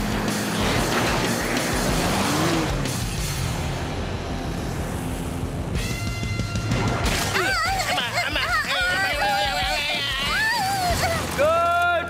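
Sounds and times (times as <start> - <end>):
cartoon action music: 5.7 - 11.4
crash noises: 6.5 - 7.6.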